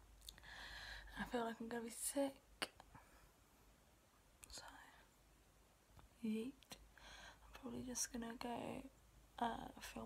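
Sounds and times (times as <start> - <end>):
soft breathy spoken word: 4.4 - 5.1.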